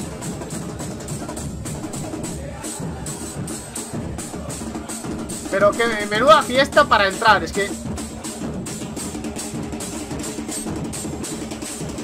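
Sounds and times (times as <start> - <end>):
bass drums beating: 0.0 - 12.0
crowd singing: 1.4 - 6.4.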